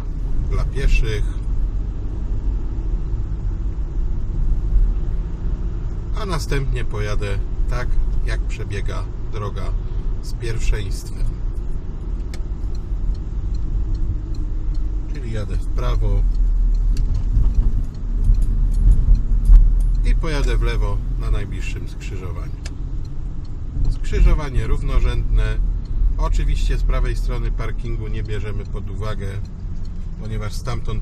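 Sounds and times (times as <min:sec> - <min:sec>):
car engine and tyre noise: 0:00.0 - 0:31.0.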